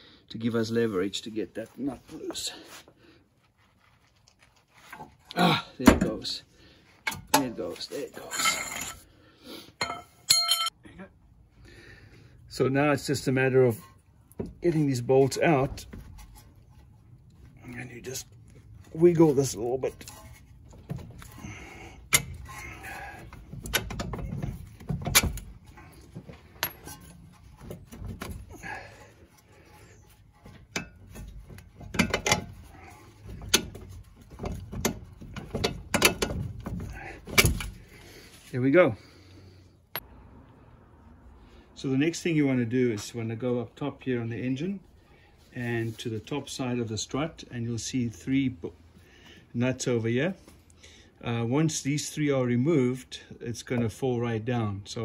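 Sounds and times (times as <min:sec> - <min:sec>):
steel tools clinking: 0:07.1 - 0:09.1, 0:09.8 - 0:10.8, 0:28.6 - 0:33.8
scraping and handling noise: 0:13.6 - 0:38.7
metallic clicks and knocks: 0:22.1 - 0:25.6, 0:30.4 - 0:37.8.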